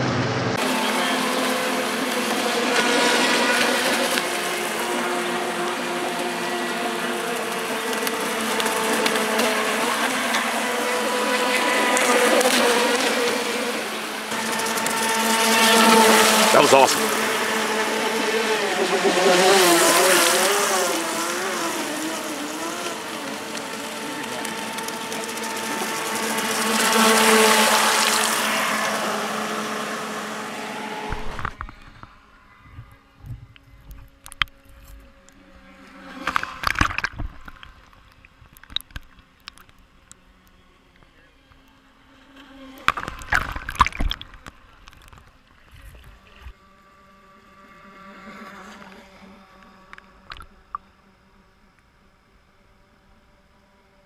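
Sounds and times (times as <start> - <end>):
electric motor whining: 0.0 - 37.9
water sloshing: 42.8 - 46.3.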